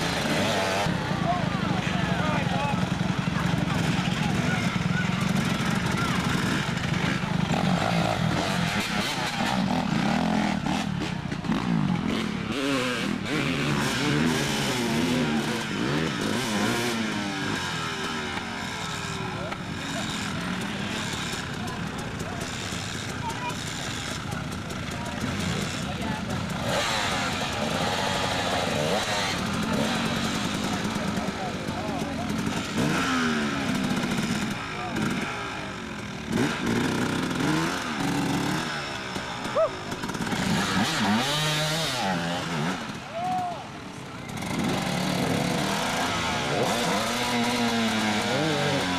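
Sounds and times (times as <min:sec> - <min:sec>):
dirt bike engines revving: 0:00.0 - 0:48.9
spectators' voices: 0:00.0 - 0:48.9.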